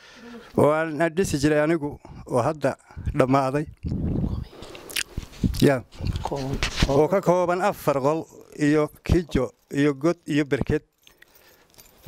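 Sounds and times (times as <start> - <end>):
man speaking into a microphone: 0.6 - 4.4, 5.6 - 10.8.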